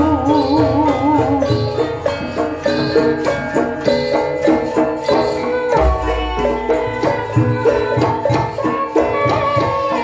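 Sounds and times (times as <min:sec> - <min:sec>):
gamelan metallic tones: 0:00.0 - 0:10.0.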